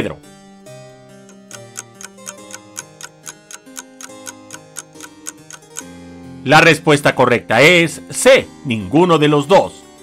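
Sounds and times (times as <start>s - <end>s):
soft background music: 0.0s - 10.0s
countdown clock ticking: 1.2s - 5.9s.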